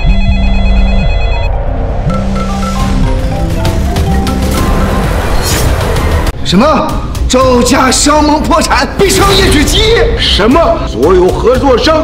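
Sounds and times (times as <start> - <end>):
phone ringtone: 0.0 - 3.1
dramatic background music: 0.0 - 12.0.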